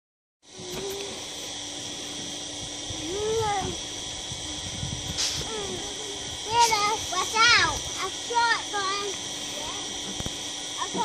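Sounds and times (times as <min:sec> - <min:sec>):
insects singing: 0:00.5 - 0:11.0.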